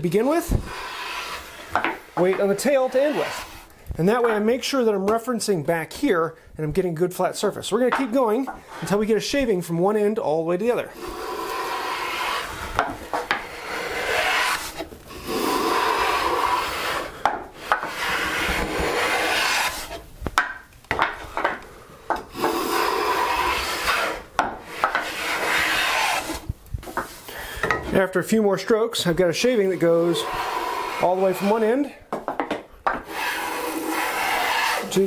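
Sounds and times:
hand plane shaving wood: 0.2 - 3.7, 10.9 - 20.0, 22.3 - 26.5, 29.4 - 31.9, 33.0 - 35.0.

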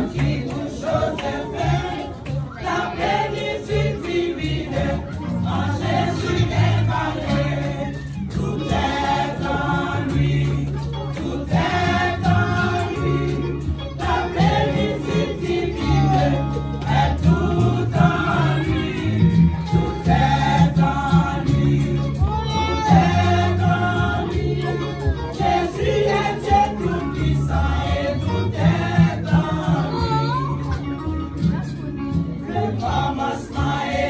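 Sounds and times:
women's choir singing a hymn: 0.0 - 30.0, 32.4 - 34.0.

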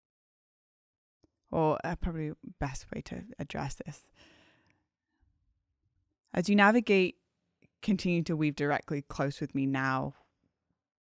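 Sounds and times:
faint breath out: 4.1 - 4.8.

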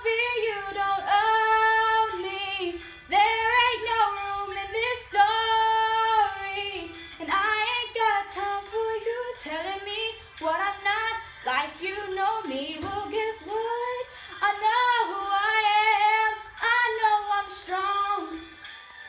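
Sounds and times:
girl singing pop ballad: 0.0 - 18.6.

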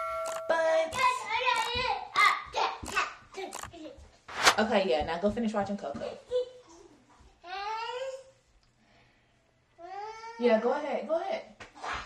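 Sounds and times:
toddler babbling: 7.4 - 8.3, 9.8 - 10.4.

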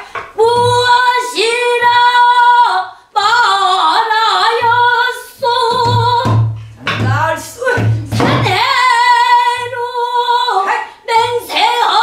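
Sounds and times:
woman singing long notes: 0.4 - 6.4, 7.0 - 12.0.

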